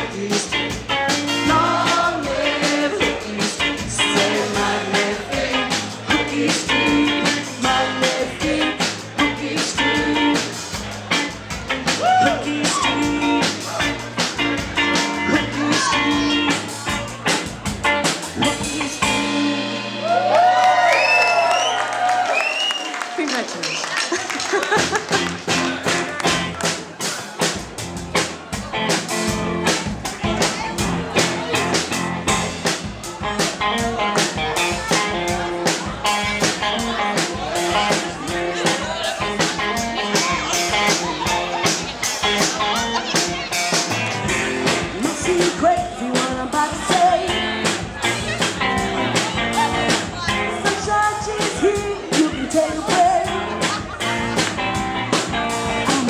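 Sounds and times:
person singing: 0.0s - 10.6s, 11.9s - 14.1s, 14.8s - 17.1s, 18.2s - 20.2s, 44.6s - 47.8s, 49.4s - 54.2s, 55.5s - 56.0s
live band playing dance music: 0.0s - 20.6s, 21.2s - 56.0s
drum kit: 0.0s - 22.4s, 24.1s - 56.0s.

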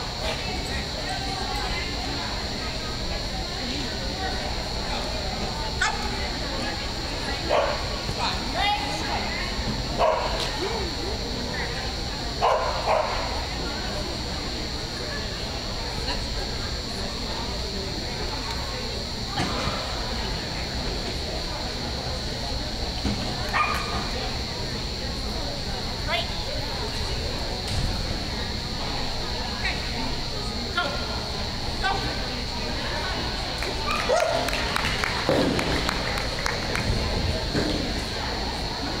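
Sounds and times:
arena background noise: 0.0s - 39.0s
steady background hum: 0.0s - 39.0s
dog barking: 10.0s - 10.4s, 12.4s - 13.2s, 23.6s - 23.9s.

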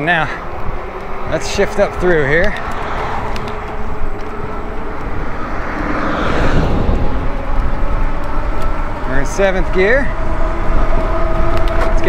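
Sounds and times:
wind rushing over microphone: 0.0s - 12.0s
electric motor whine: 0.2s - 12.0s.

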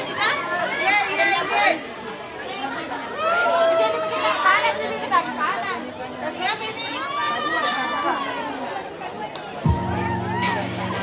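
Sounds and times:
young people chattering: 0.0s - 11.0s.

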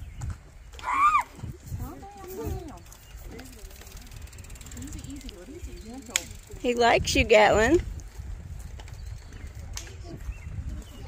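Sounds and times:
faint voices: 0.9s - 7.8s
bicycle freewheel ticking: 2.6s - 9.6s.

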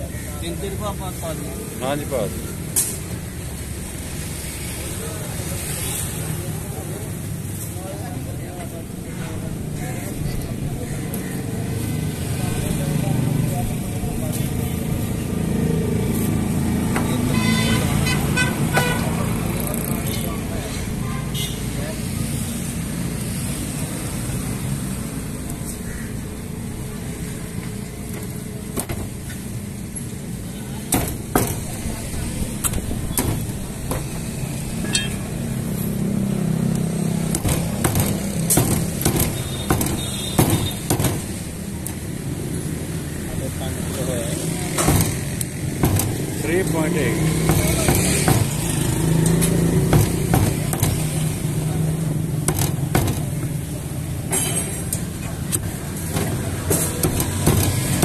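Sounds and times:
traffic rumble: 0.0s - 58.0s
sharp knocks: 30.9s - 31.8s, 32.6s - 34.3s, 37.3s - 41.4s, 44.8s - 46.4s, 47.2s - 51.4s, 52.4s - 53.5s, 55.6s - 58.0s.

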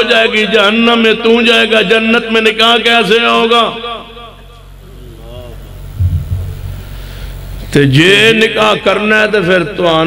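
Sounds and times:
steady low hum: 4.3s - 8.3s.

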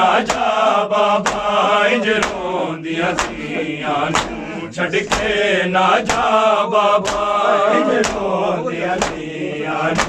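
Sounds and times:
men chanting in unison: 0.0s - 10.0s
hands slapping chests: 0.1s - 10.0s.

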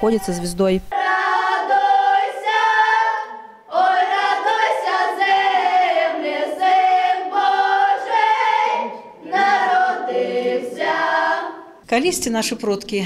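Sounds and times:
children's choir singing unaccompanied: 0.0s - 11.8s.

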